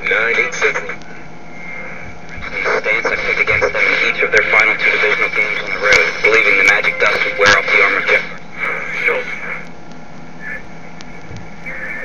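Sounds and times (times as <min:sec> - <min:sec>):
voice on radio: 0:00.0 - 0:01.0, 0:02.3 - 0:09.7, 0:10.4 - 0:10.7, 0:11.6 - 0:12.0
radio static hiss: 0:00.0 - 0:12.0
steady high whistle: 0:10.4 - 0:10.7, 0:11.6 - 0:12.0.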